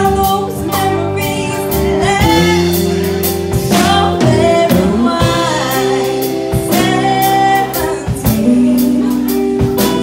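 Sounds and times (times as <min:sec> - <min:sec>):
country band playing: 0:00.0 - 0:10.0
woman singing: 0:00.0 - 0:10.0.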